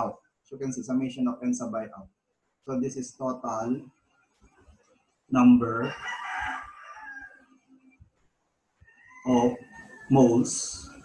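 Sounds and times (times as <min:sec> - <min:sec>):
rooster crowing: 0:05.7 - 0:07.5, 0:08.8 - 0:11.0.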